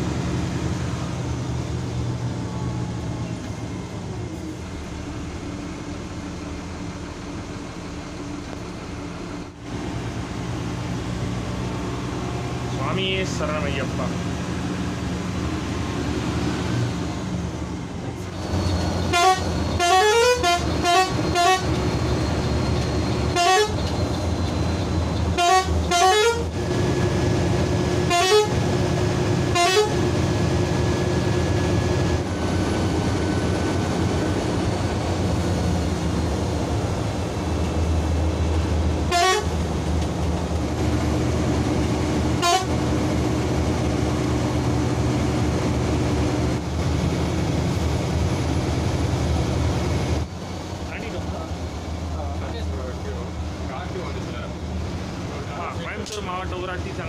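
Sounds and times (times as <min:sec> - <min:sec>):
engine and tyres humming: 0:00.0 - 0:57.0
bus horn honking: 0:18.6 - 0:24.2, 0:25.3 - 0:26.6, 0:27.9 - 0:30.2, 0:39.0 - 0:39.7, 0:42.3 - 0:43.0.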